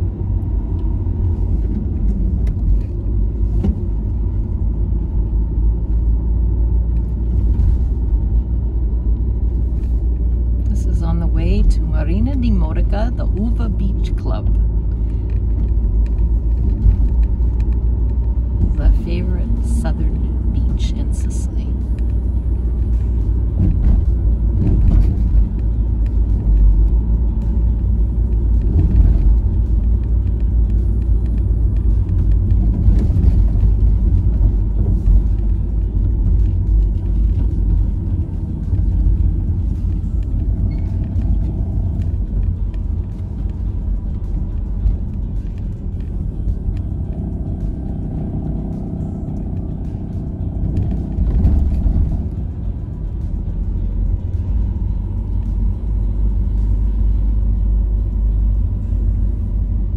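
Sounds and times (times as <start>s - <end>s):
car road and engine rumble: 0.0s - 59.9s
faint music: 0.0s - 59.9s.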